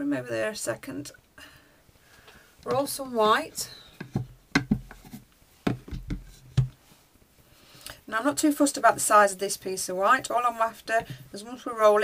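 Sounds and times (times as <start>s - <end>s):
board knocking on work top: 4.0s - 5.0s, 5.7s - 6.8s.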